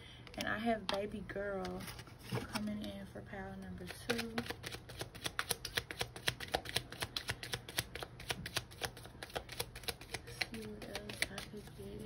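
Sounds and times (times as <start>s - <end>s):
cards being shuffled: 3.8s - 12.0s.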